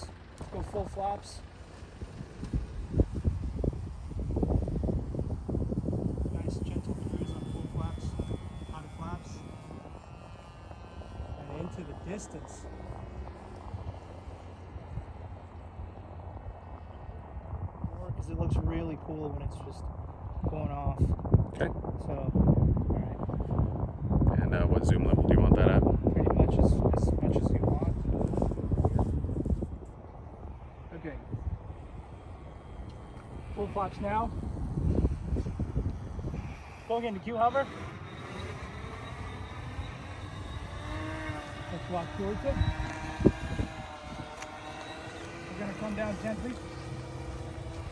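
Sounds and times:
rc plane propeller whine: 0.0s - 47.9s
wind rumble on microphone: 0.0s - 47.9s.

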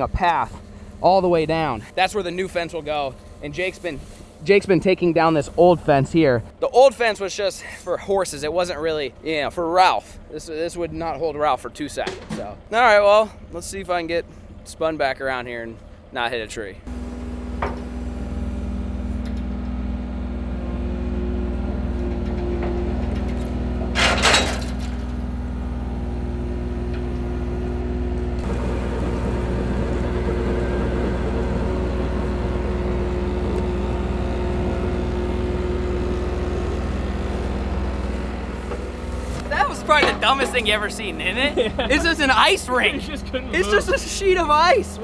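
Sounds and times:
diesel engines running: 0.0s - 45.0s.

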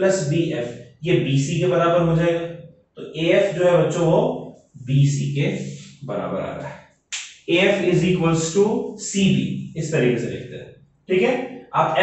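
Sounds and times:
man talking: 0.0s - 6.7s, 7.5s - 12.0s.

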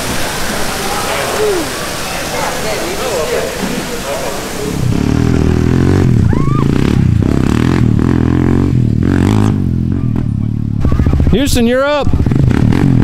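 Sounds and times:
atv engine revving: 4.6s - 13.0s.

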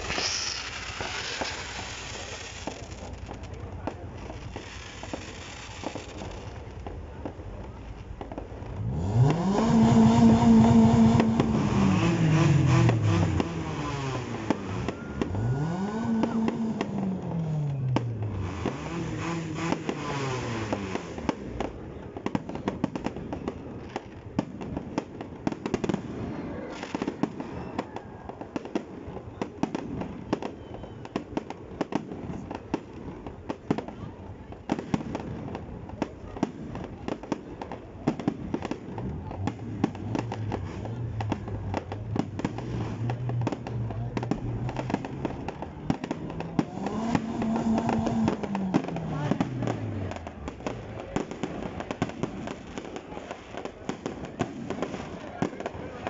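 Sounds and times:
fireworks bangs: 0.0s - 56.0s
fireworks popping and crackling: 0.0s - 56.0s.

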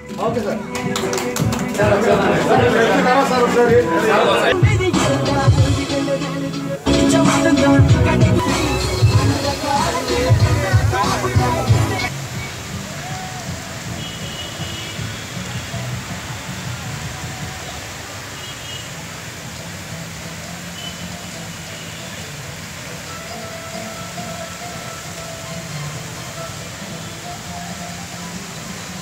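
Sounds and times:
scattered voices: 0.0s - 5.6s, 6.6s - 12.1s
fountain water jets spraying: 0.0s - 29.0s.

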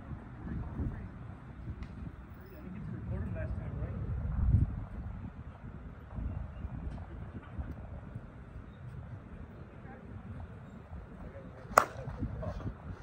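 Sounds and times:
bat hitting softball crack: 11.6s - 12.3s.

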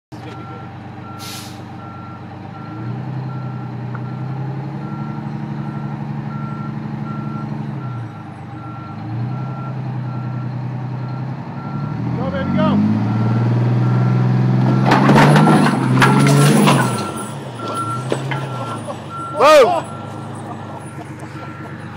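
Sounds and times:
truck engine revving: 0.1s - 21.9s
reverse alarm beeping: 14.7s - 21.9s.

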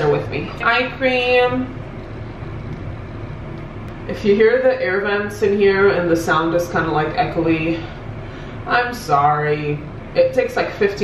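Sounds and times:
air vent rushing air: 0.0s - 11.0s
low hum: 0.0s - 11.0s.

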